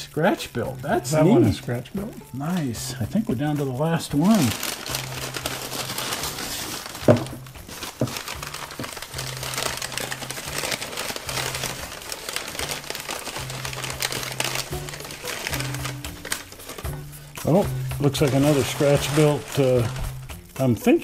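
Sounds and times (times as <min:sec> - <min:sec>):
soft background music: 0:00.0 - 0:21.0
paper wrapping crinkling: 0:00.7 - 0:20.8.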